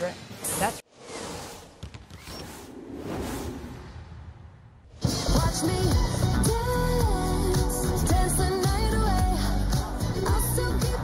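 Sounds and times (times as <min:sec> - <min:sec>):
swooshing transition effects: 0:00.2 - 0:05.5.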